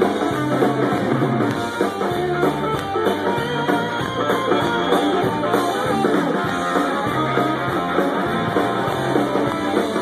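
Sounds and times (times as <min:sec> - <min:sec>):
bass guitar: 0:00.0 - 0:10.0
drum kit: 0:00.0 - 0:10.0
electric guitars: 0:00.0 - 0:10.0.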